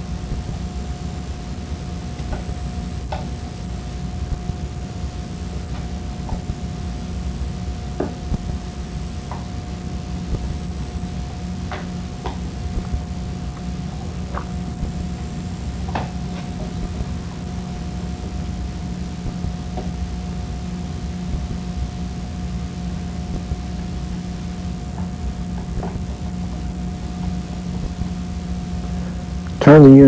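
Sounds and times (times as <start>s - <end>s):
low hum and hiss: 0.0s - 30.0s
thin steady tone: 0.0s - 30.0s.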